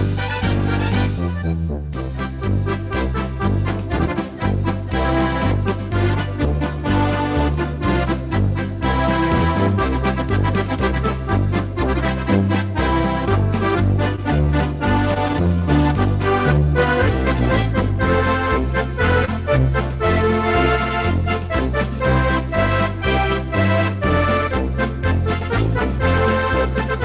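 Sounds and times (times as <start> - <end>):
polka on electronic organ: 0.0 - 27.0.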